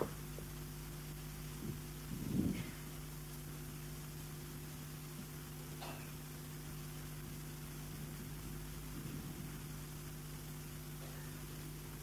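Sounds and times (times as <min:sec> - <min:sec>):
background hiss: 0:00.0 - 0:12.0
low electrical hum: 0:00.0 - 0:12.0.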